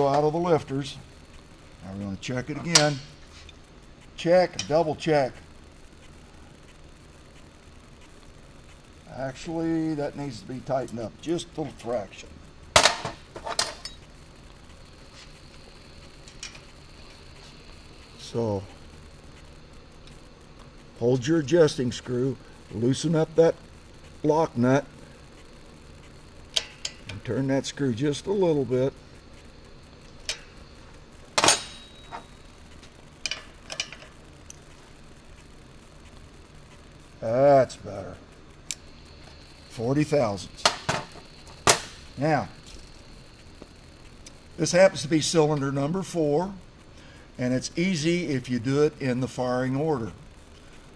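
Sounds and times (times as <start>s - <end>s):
metal tools clicking and clinking: 33.2s - 34.1s.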